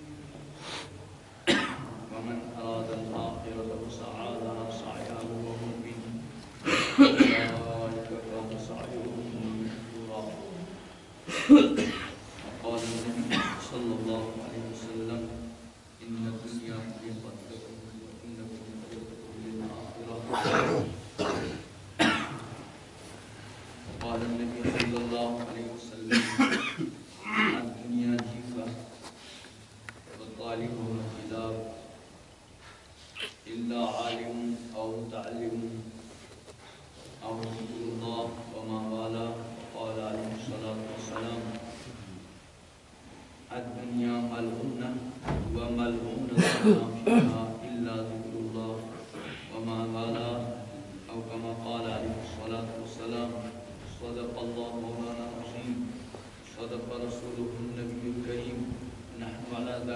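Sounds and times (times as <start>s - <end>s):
man coughing: 1.4s - 2.0s, 6.6s - 7.6s, 11.3s - 12.2s, 13.2s - 13.7s, 20.3s - 22.5s, 26.0s - 27.7s, 46.3s - 47.4s.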